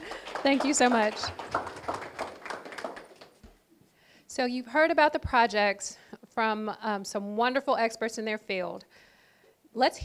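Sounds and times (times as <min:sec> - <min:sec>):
audience applause: 0:00.0 - 0:03.4.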